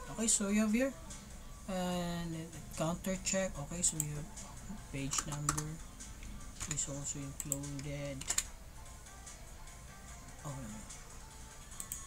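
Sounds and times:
faint background music: 0.0s - 12.0s
computer keyboard clicks: 5.1s - 5.7s.

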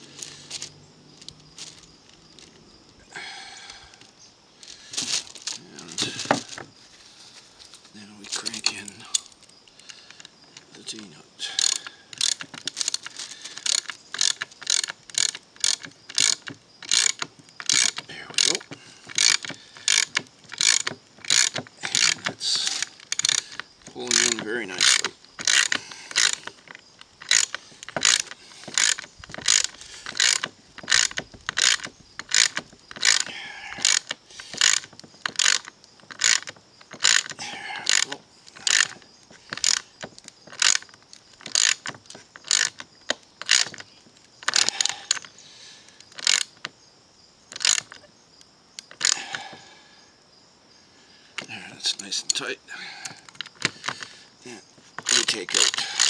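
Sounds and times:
ratchet wrench clicking: 11.6s - 42.8s, 46.0s - 46.6s, 47.5s - 48.0s.

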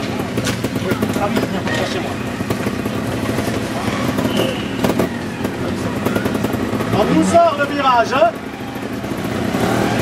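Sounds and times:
motorcycle engine at low revs: 0.0s - 10.0s.

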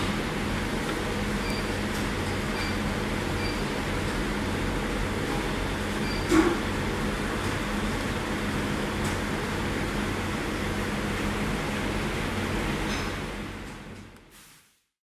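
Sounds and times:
low mechanical hum: 0.0s - 14.6s.

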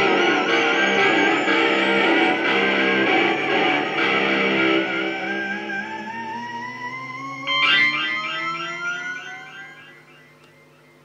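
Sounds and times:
electric guitar sliding notes: 0.0s - 11.0s.

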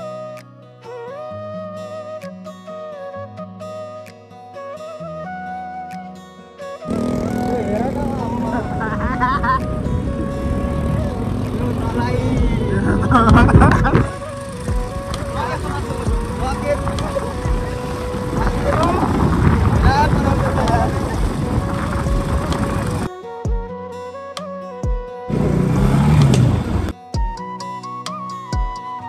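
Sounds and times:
music: 0.0s - 29.0s
voice: 6.9s - 14.3s, 15.1s - 23.1s
motorcycle running: 6.9s - 23.1s, 25.3s - 27.0s
wind rush on microphone: 8.0s - 23.1s.

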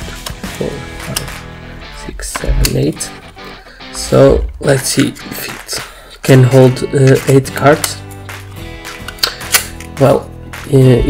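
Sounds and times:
background music: 0.0s - 11.0s
metal card holder clicks: 1.0s - 1.4s, 8.9s - 10.0s.

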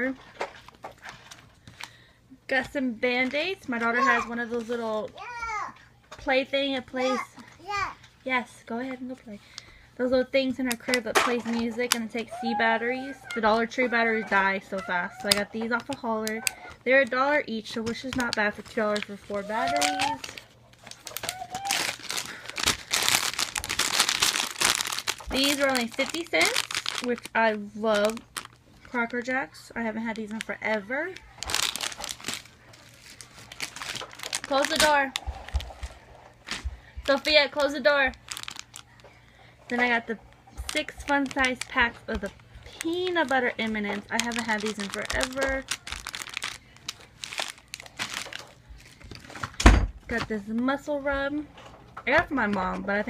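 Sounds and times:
crinkly packaging rustling: 0.0s - 5.4s, 10.5s - 50.4s.

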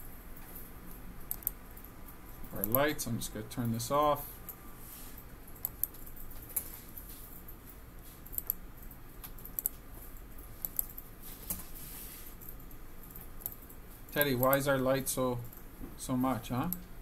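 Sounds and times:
keyboard and mouse clicks: 1.3s - 1.6s, 2.6s - 2.8s, 5.6s - 6.7s, 8.2s - 9.8s, 10.6s - 11.0s, 12.4s - 14.6s.

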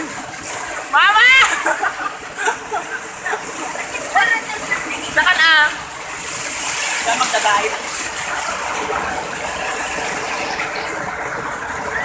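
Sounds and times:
waterfall splashing over rocks: 0.0s - 12.0s.

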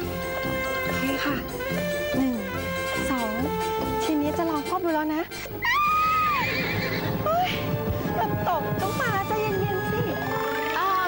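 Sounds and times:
horse neighing: 5.6s - 8.1s, 10.1s - 11.0s.

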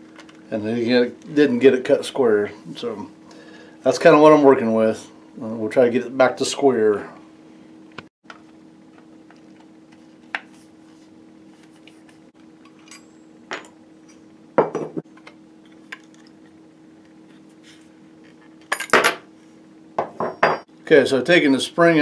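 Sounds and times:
metal tools clinking on workbench: 12.7s - 13.8s, 18.7s - 19.2s.

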